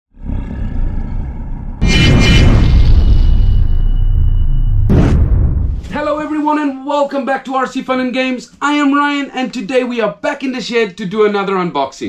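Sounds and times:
loud boom: 0:01.8 - 0:06.1.

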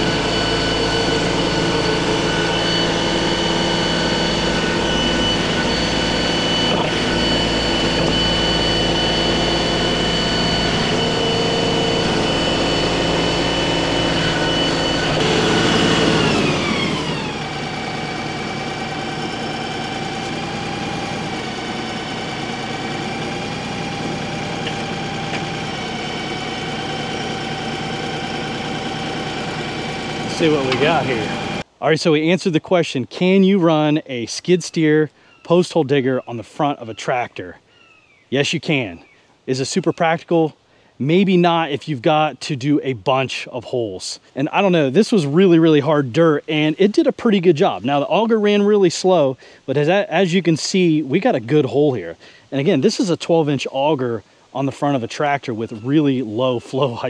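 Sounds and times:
tractor diesel engine running: 0:00.0 - 0:31.8
steady high whine: 0:00.0 - 0:32.3, 0:44.5 - 0:57.0.

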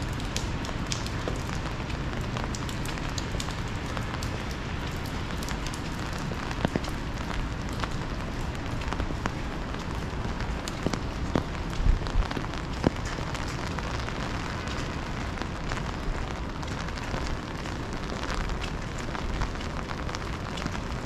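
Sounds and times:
rain on an umbrella: 0:00.0 - 0:21.0.

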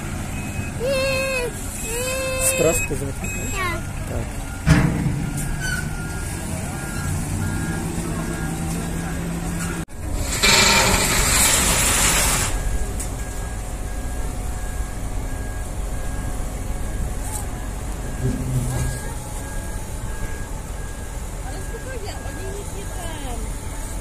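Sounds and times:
reversing alarm beeping: 0:00.0 - 0:11.4, 0:12.4 - 0:24.0
heavy diesel machinery running: 0:00.0 - 0:24.0.

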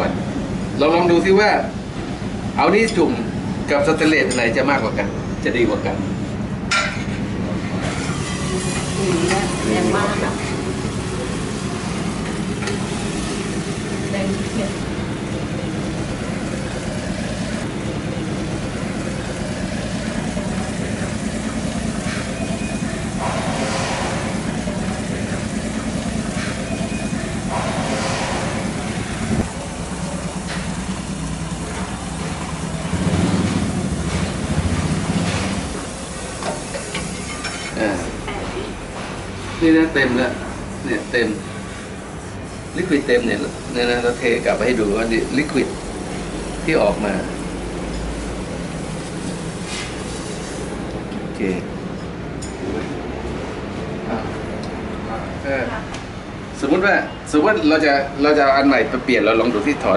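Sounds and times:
liquid nitrogen hissing: 0:07.8 - 0:38.1, 0:39.6 - 0:50.9.

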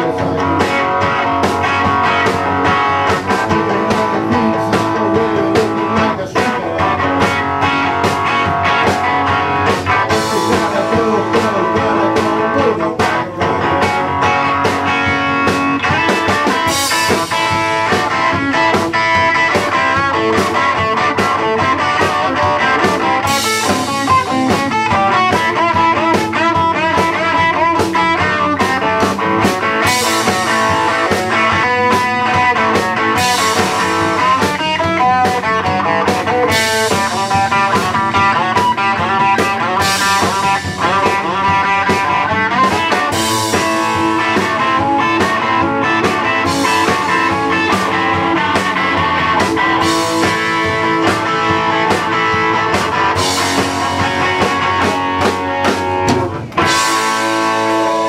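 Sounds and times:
bass guitar: 0:00.0 - 0:58.0
drum beat: 0:00.0 - 0:58.0
electric guitar lead: 0:00.0 - 0:58.0.

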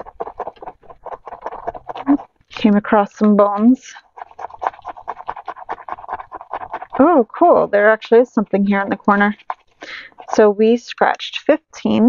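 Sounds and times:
scratching paper coating: 0:00.0 - 0:11.0.

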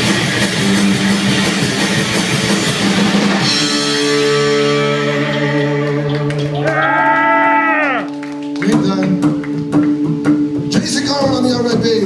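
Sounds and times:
drums playing steady beat: 0:00.0 - 0:06.7, 0:08.1 - 0:12.0
electric guitar: 0:00.0 - 0:12.0.

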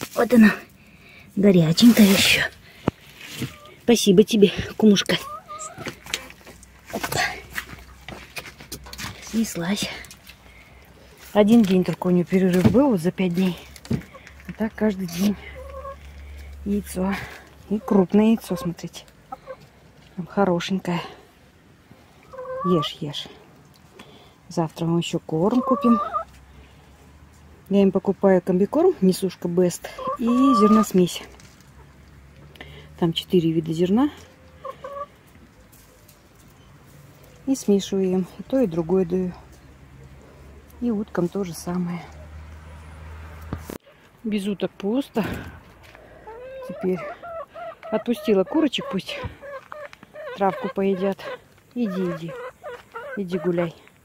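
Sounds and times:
hen clucking: 0:03.3 - 0:07.2, 0:12.8 - 0:19.7, 0:22.2 - 0:23.1, 0:25.3 - 0:26.4, 0:29.1 - 0:31.1, 0:33.9 - 0:35.7, 0:46.0 - 0:54.0
poultry calling: 0:15.0 - 0:16.5, 0:22.2 - 0:22.9, 0:34.2 - 0:35.3, 0:46.0 - 0:53.8.

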